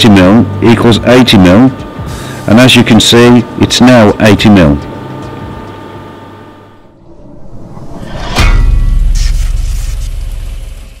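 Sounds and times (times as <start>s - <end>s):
steady background hum: 0.0s - 11.0s
rising whoosh: 6.8s - 11.0s
deep boom: 7.0s - 11.0s.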